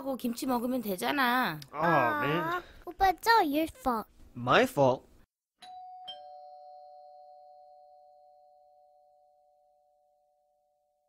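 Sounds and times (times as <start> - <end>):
two-tone doorbell chime: 5.6 - 10.8.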